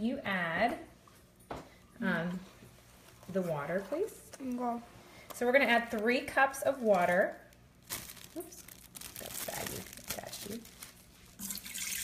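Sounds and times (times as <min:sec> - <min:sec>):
faint handling sounds: 0:01.1 - 0:11.4
water pouring into metal pot: 0:11.4 - 0:12.0.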